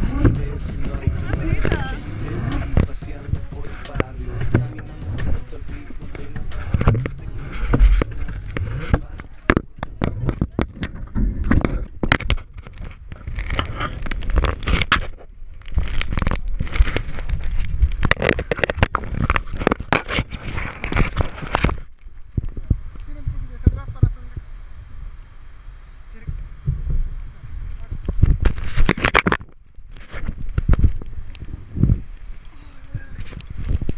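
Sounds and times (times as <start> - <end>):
fabric rubbing on camera: 0.0 - 9.4, 12.6 - 21.9
low rumble: 0.0 - 14.7
camera handling noise: 28.4 - 31.1.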